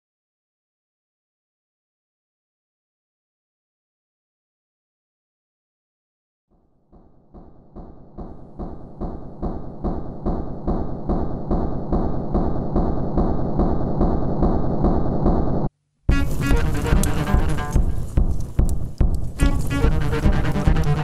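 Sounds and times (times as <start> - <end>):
electronic sound: 13.0 - 18.2, 19.4 - 21.0
electric cello pulsing: 16.1 - 18.3, 19.4 - 21.0.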